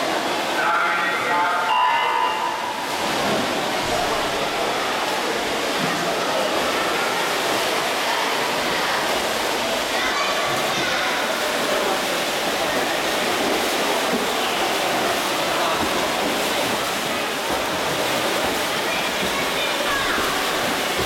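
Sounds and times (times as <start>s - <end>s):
echoing hubbub of voices: 0.0s - 21.0s
water splashing: 0.0s - 21.0s
pitched tone: 1.6s - 2.9s.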